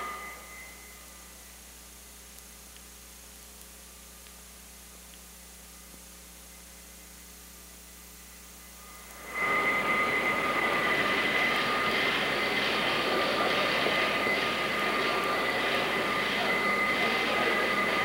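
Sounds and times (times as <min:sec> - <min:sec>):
rushing noise of a large hall: 0:00.0 - 0:02.0, 0:07.6 - 0:18.0
high steady whining tones: 0:00.0 - 0:02.1, 0:05.6 - 0:18.0
low mains hum: 0:00.0 - 0:18.0.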